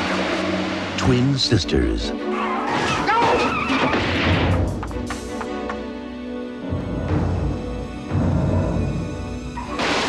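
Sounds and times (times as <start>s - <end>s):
trailer music: 0.0s - 10.0s
car tyres squealing: 2.3s - 4.2s.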